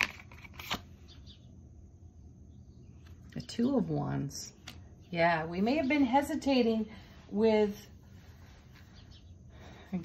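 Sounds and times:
cards clicking together: 0:00.0 - 0:00.9.

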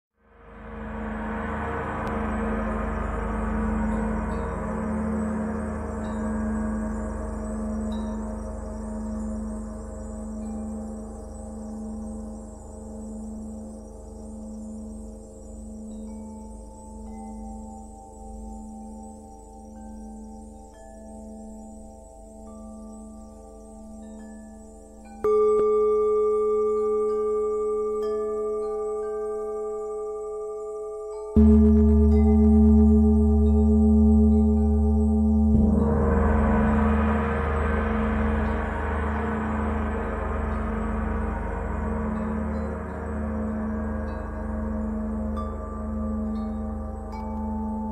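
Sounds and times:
gong pulsing drone: 0:00.3 - 0:13.5, 0:31.1 - 0:47.9
gong ringing: 0:31.4 - 0:44.4.

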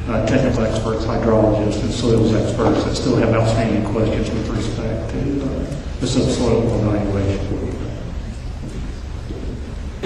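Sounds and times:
room noise rumble and hiss: 0:00.0 - 0:10.0.

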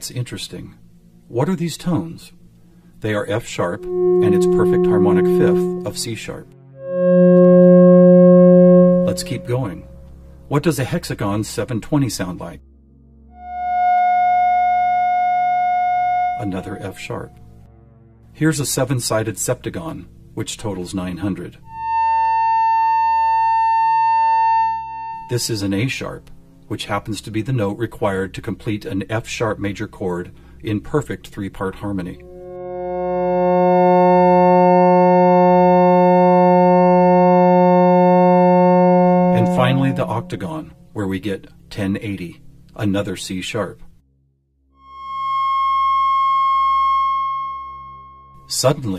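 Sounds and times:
steady electronic tone: 0:00.7 - 0:10.6, 0:12.7 - 0:18.2, 0:21.6 - 0:26.5, 0:31.6 - 0:40.9, 0:44.8 - 0:48.7.

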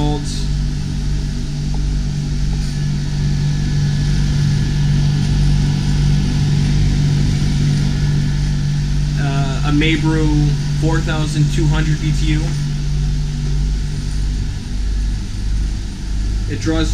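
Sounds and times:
air conditioning machinery hum: 0:00.0 - 0:16.9.

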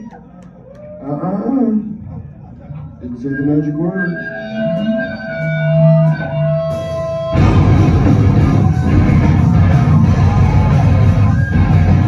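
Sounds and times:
bass guitar low notes: 0:05.5 - 0:12.0.

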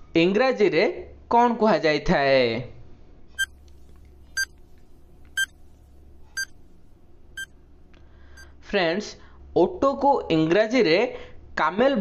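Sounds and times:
faint steady hum: 0:02.8 - 0:11.6.

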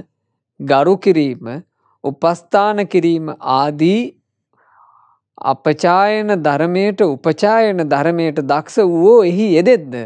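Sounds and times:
man reading aloud: 0:00.6 - 0:04.2, 0:05.4 - 0:10.0.

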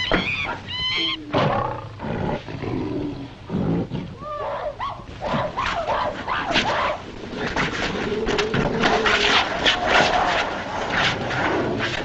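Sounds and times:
high swooping animal calls: 0:00.0 - 0:01.9
roar-like animal calls: 0:00.0 - 0:12.0.

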